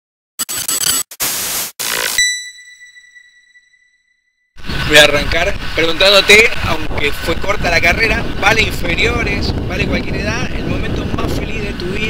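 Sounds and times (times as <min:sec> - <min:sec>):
bursts of harsh static: 0:00.4 - 0:02.2.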